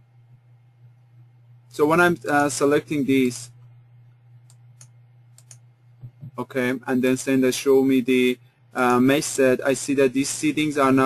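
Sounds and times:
steady low hum: 0.0 - 11.0
faint sharp computer clicks: 4.4 - 6.4.

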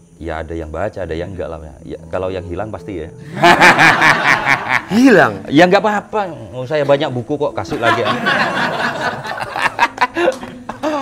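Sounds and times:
people laughing: 3.2 - 5.5, 7.7 - 11.0.

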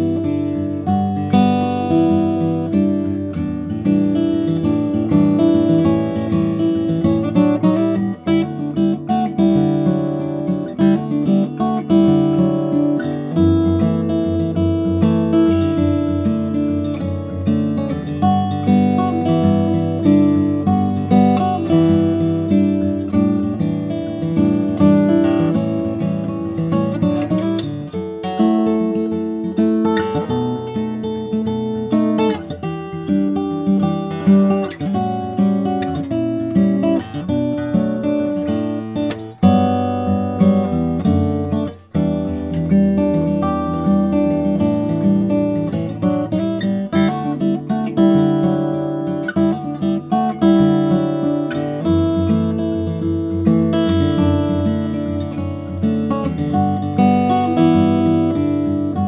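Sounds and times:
acoustic guitar played fingerstyle: 0.0 - 59.0.

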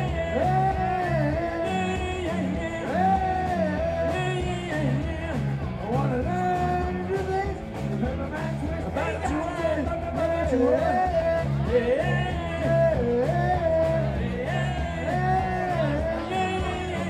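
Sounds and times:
bass line: 0.0 - 17.0
drum kit: 0.0 - 17.0
electric guitar: 0.0 - 17.0
male singer singing: 0.0 - 17.0.

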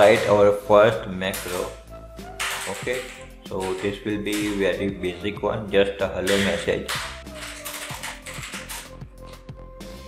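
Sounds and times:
background music: 0.0 - 10.0
typing on computer keyboard: 2.4 - 4.6, 6.3 - 8.9.

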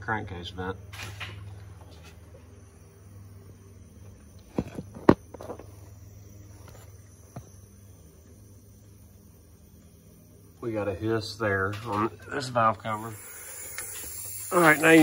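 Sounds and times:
steady low hum: 0.0 - 15.0
compressed air hissing: 8.2 - 15.0.

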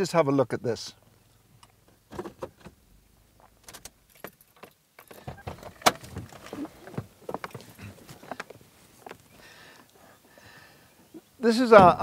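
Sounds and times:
person moving in car seat: 5.1 - 9.4.

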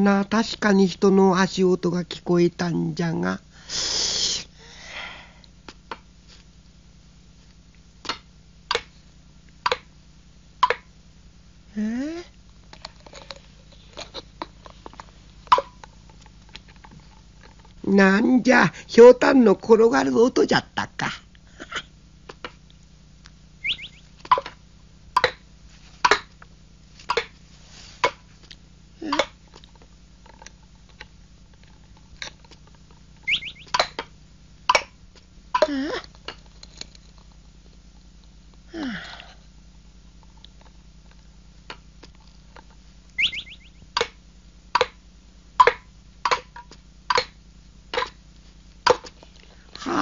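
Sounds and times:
rising cartoon chirps: 23.6 - 24.1, 33.2 - 34.0, 43.2 - 43.8.

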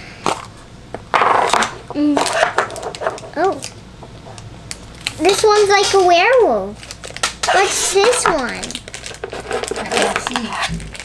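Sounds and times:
plastic wrapper crinkling: 2.2 - 3.8, 4.7 - 11.0.

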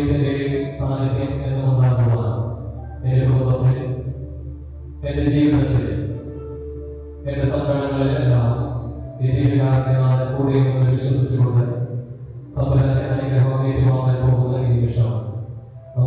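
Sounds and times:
man chanting a prayer: 0.0 - 4.1, 5.0 - 6.2, 7.2 - 16.0.

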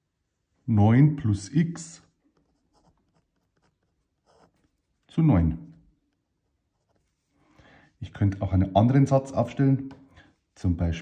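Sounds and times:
pen scratching on paper: 2.3 - 5.0, 6.1 - 7.3.

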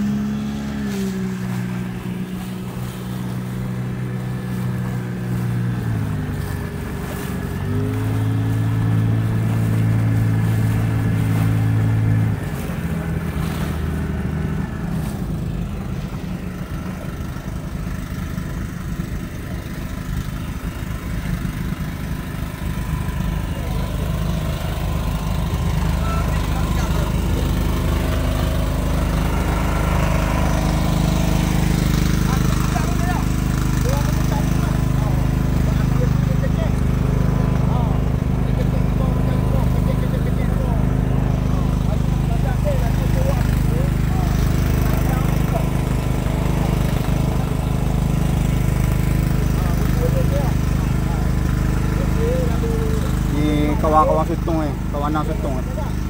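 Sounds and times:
boat engine droning: 0.0 - 56.0.

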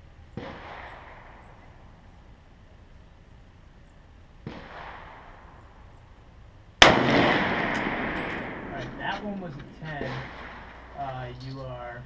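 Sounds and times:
faint distant gunshot: 0.4 - 1.7, 4.4 - 5.8, 6.8 - 9.1, 10.0 - 11.0
rifle shot with echo: 0.4 - 1.7, 4.4 - 5.7, 6.8 - 9.1, 10.0 - 11.0
metallic clinks: 7.8 - 9.0.

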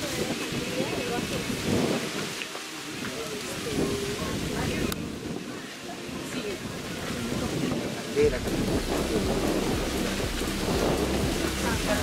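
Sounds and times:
faint indistinct voices: 0.0 - 12.0
wind buffeting microphone: 0.0 - 12.0.

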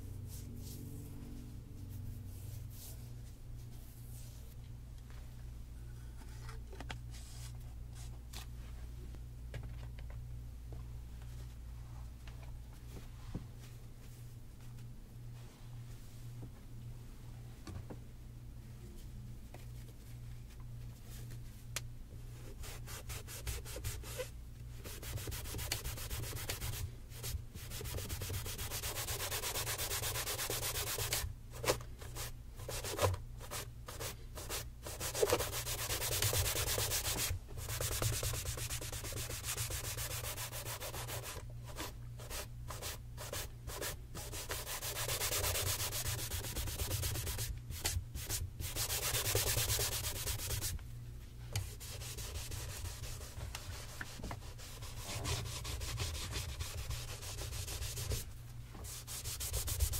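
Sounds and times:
cloth buffing leather shoe: 58.8 - 59.9.

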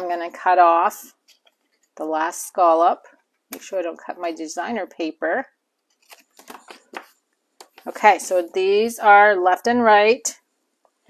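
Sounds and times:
paper handling clicks: 5.9 - 7.9.

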